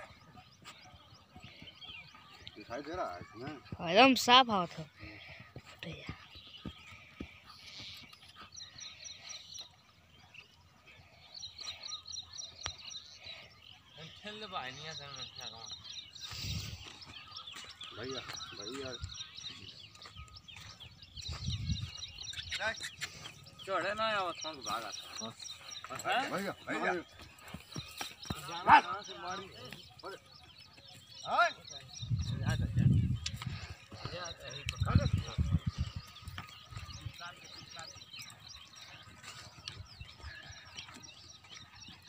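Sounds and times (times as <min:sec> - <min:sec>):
people shouting calls: 0:28.3 - 0:30.2.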